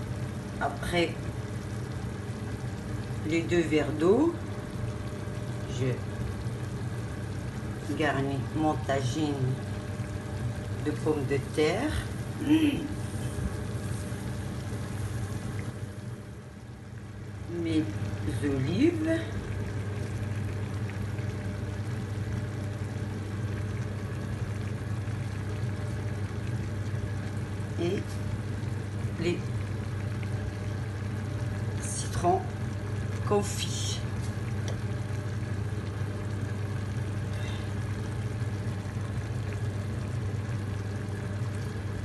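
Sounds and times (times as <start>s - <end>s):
broth simmering and bubbling: 0.0s - 42.0s
low steady hum: 0.0s - 42.0s.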